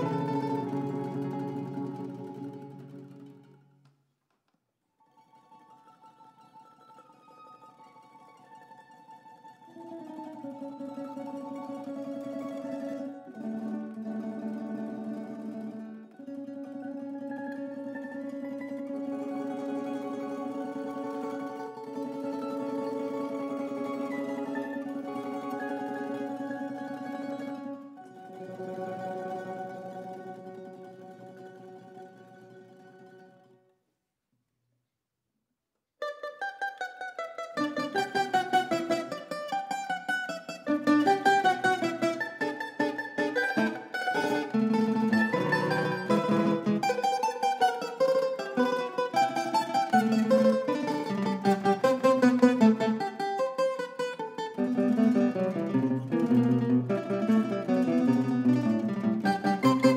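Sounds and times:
tambura ensemble held chords: 0.0 - 3.8, 5.4 - 33.6, 37.6 - 59.9
quickly plucked string notes: 0.0 - 3.9, 9.7 - 33.5, 36.0 - 59.9.

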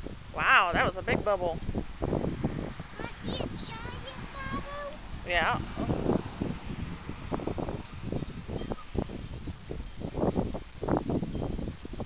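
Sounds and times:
wind gusting on microphone: 0.0 - 12.0.

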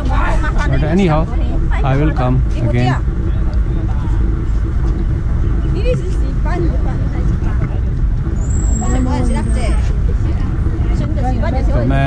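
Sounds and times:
low outdoor rumble: 0.0 - 12.0
people talking: 5.6 - 12.0
thin high whistle: 8.4 - 9.9.

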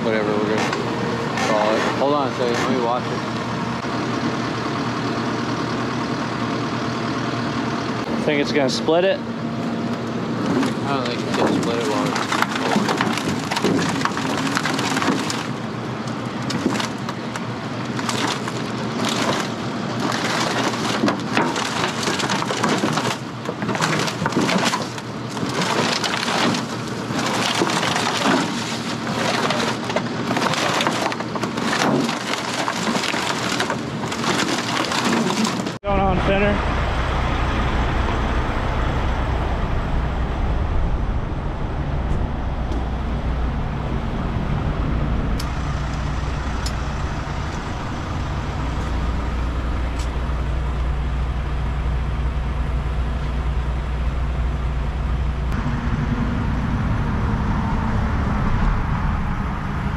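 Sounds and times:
tow truck diesel engine drone: 0.0 - 59.9
wrecked trailer crunching and cracking: 0.0 - 59.9.

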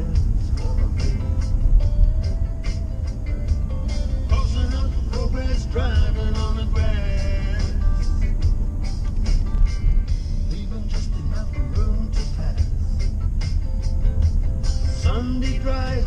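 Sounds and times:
car rumbling on road: 0.0 - 16.0
song with vocals on car stereo: 0.0 - 16.0.

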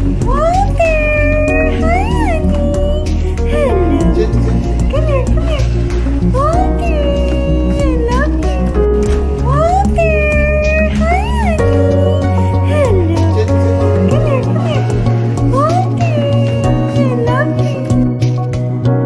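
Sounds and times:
background music with bass line: 0.0 - 19.0.

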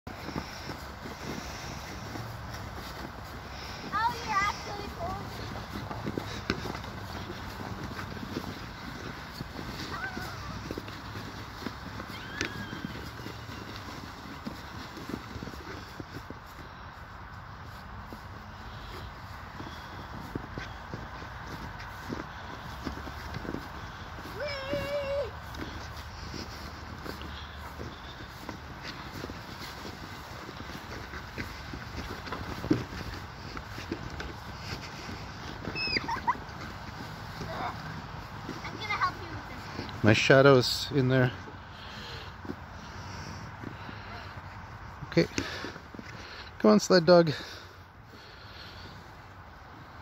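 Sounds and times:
footsteps crunching through snow: 0.1 - 50.0
sled scraping on snow: 0.1 - 50.0
child squealing: 12.0 - 13.0, 24.4 - 25.3, 35.7 - 36.4.

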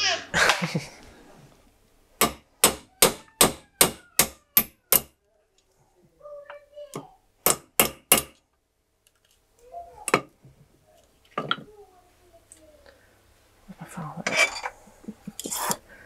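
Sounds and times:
hammer striking metal punch: 2.2 - 5.1, 7.4 - 8.4.

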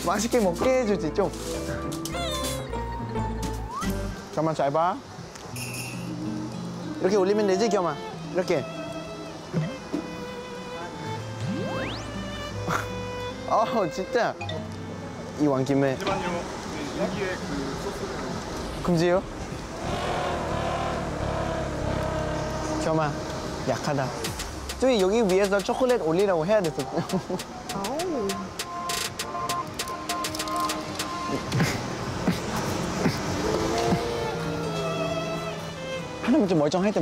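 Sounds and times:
background music: 0.0 - 16.6, 19.8 - 37.0.

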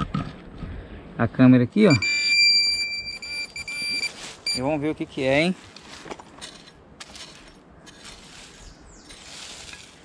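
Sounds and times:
high-pitched pinpointer beep: 1.9 - 4.7.

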